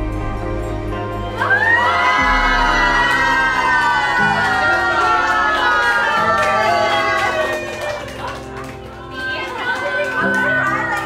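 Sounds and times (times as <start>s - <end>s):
background music: 0.0s - 11.0s
women screaming with excitement: 1.3s - 11.0s.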